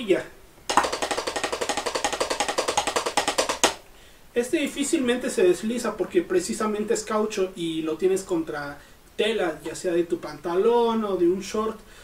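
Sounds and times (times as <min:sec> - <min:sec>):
drumsticks tapping a practice pad: 0:00.7 - 0:03.8.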